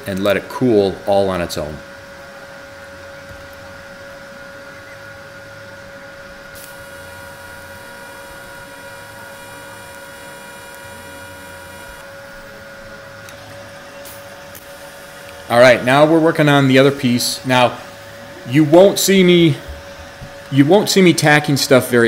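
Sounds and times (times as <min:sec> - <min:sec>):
welding arc humming: 0:00.0 - 0:22.0
higher steady tones: 0:01.0 - 0:21.2.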